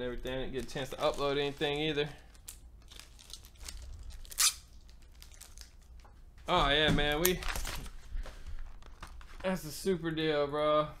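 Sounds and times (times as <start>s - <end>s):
packaging crinkling: 0.0s - 6.2s, 7.1s - 9.7s
packaging ripping: 0.1s - 6.1s.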